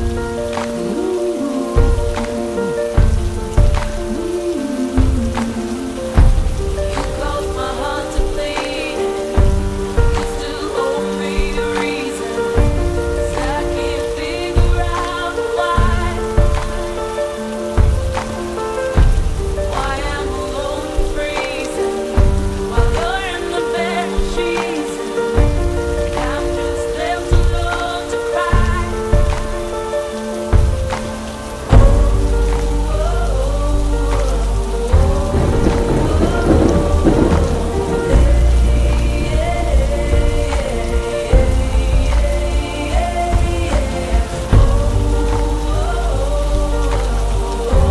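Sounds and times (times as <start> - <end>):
slow instrumental music: 0.0 - 47.9
steady rain: 0.0 - 47.9
deep low rumble: 31.7 - 47.9.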